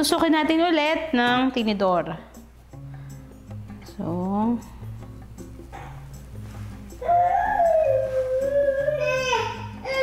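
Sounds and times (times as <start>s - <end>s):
soft background music: 0.0s - 10.0s
dog howling: 7.0s - 9.1s.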